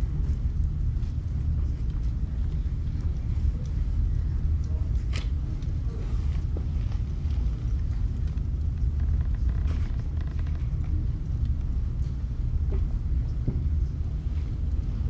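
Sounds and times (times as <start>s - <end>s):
low room rumble: 0.0s - 15.0s.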